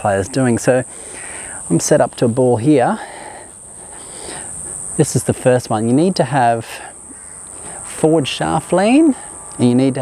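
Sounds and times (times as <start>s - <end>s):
faint outdoor hiss: 0.0s - 10.0s
insects trilling: 0.0s - 10.0s.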